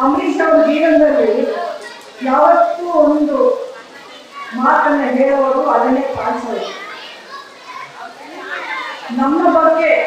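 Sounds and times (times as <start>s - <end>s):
woman speaking over a microphone: 0.0s - 1.6s, 2.2s - 3.8s, 4.5s - 6.7s, 9.1s - 10.0s
faint crowd voices: 0.0s - 10.0s.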